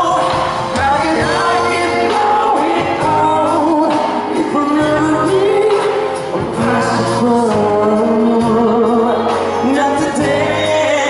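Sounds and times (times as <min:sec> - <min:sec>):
amplified pop backing music: 0:00.0 - 0:11.0
man singing into microphone: 0:00.0 - 0:11.0.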